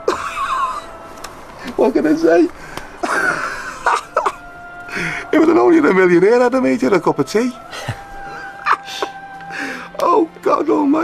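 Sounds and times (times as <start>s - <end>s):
soft background music: 0.0s - 11.0s
man coughing: 3.0s - 4.4s.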